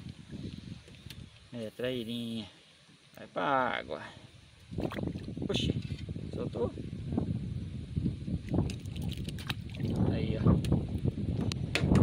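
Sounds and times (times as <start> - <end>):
wind rumble on microphone: 0.0 - 1.5, 4.6 - 12.0
fish splashing into water: 8.7 - 10.0.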